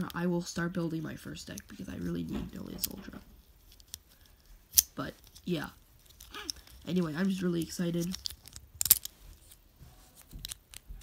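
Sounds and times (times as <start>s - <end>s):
soft handling noise: 0.8s - 11.0s.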